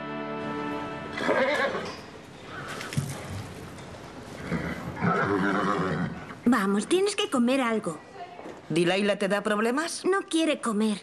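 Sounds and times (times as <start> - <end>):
horse nickering: 4.4 - 6.4.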